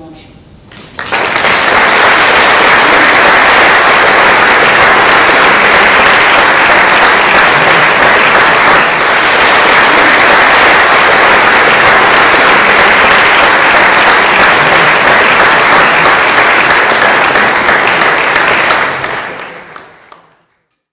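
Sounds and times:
audience applauding: 0.7 - 20.5.

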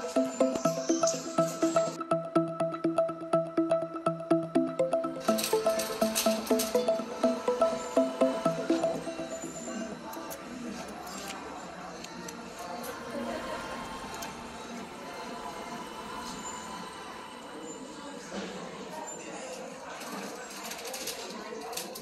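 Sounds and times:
indistinct voices: 0.0 - 20.1
faint background music: 0.0 - 22.0.

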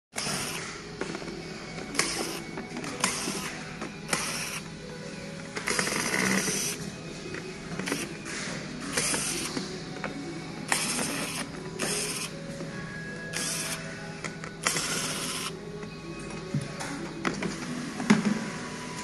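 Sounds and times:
electric screwdriver whirring: 10.7 - 12.3, 14.6 - 15.5.

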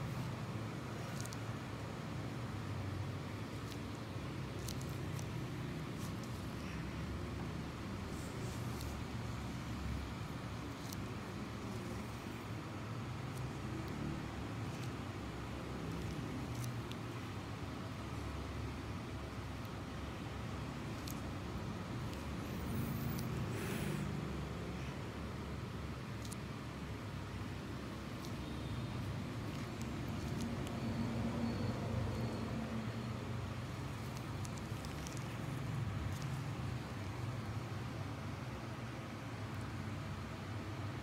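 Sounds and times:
low background hum: 0.0 - 41.0.

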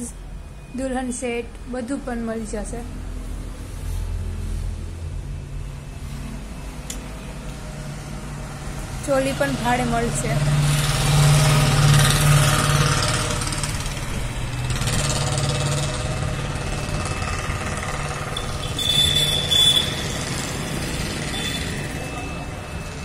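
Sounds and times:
traffic hum: 0.0 - 23.0
vehicle engine passing: 2.9 - 23.0.

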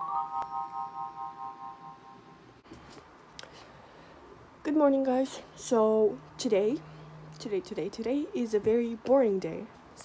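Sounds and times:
electronic chime chord: 0.0 - 2.6.

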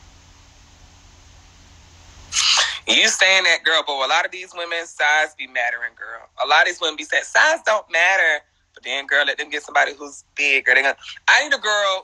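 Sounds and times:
man talking: 2.4 - 12.0.

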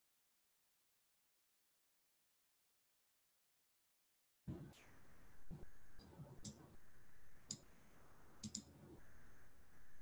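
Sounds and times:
computer mouse clicks: 6.0 - 6.7, 7.4 - 7.7, 8.4 - 8.8.

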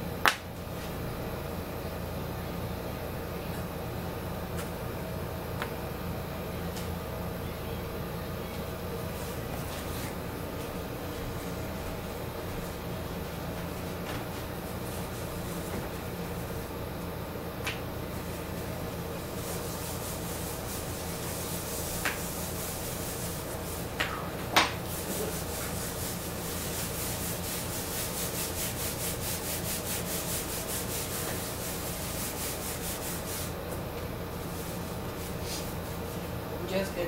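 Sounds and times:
wipe rubbing drawing board: 18.3 - 24.0, 24.8 - 33.6, 34.4 - 36.3.

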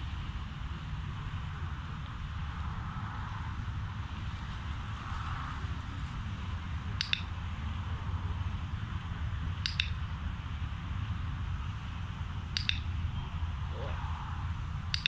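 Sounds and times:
dog-training clicker clicking: 7.0 - 7.3, 9.6 - 10.0, 12.5 - 12.9
low rumble: 12.7 - 15.0.

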